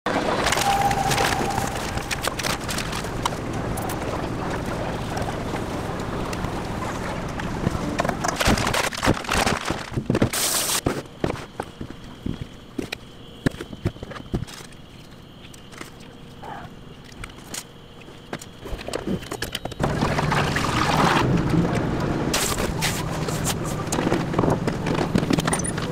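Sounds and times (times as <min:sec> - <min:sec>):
food prep clatter and clicks: 0:07.3 - 0:14.7
scattered clicks and knocks: 0:22.6 - 0:25.9.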